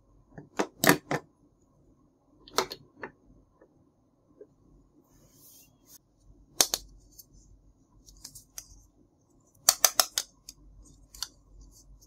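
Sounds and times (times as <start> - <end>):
plastic toy pieces clicking: 9.6 - 10.6.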